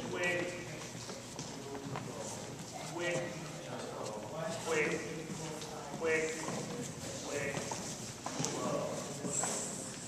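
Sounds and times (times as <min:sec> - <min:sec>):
footsteps on hardwood floor: 0:00.0 - 0:10.0.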